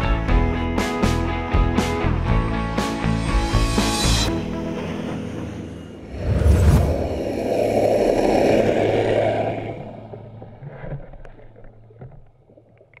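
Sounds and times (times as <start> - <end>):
churning water: 4.3 - 13.0
underwater propeller hum: 4.3 - 13.0.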